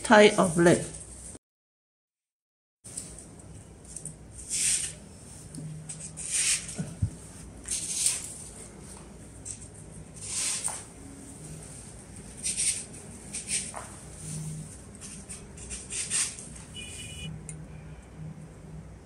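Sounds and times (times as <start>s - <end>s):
artificial leaves rustling: 2.9s - 16.7s
stems scratching into foam: 5.9s - 6.9s.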